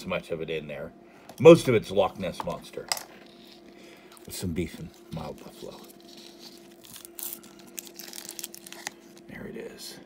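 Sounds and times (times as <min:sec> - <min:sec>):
plastic wrapper crinkling and tearing: 0:03.3 - 0:09.4.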